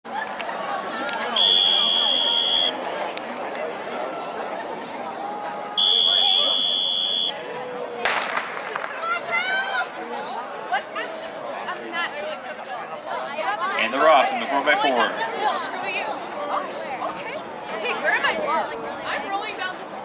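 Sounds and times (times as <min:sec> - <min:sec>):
spectators calling and cheering: 0:00.1 - 0:20.0
starting pistol shot: 0:08.1 - 0:09.0.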